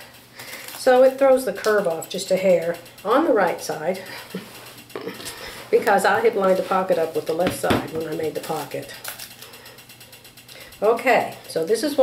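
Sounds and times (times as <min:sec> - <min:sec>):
rapid mechanical ticking: 0:00.0 - 0:12.0
person speaking: 0:00.8 - 0:09.0.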